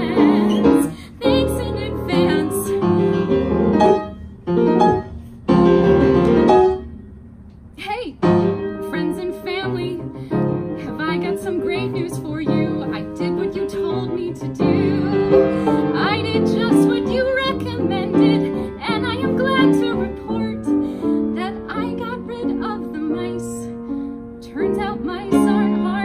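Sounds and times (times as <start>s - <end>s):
woman singing: 0.0s - 3.5s, 8.8s - 10.2s, 10.8s - 23.7s, 24.4s - 26.0s
piano accompaniment: 0.0s - 26.0s.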